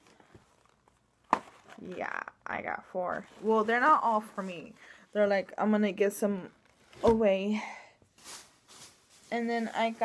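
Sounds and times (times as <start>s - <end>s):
woman speaking: 1.8s - 7.8s, 9.3s - 10.0s.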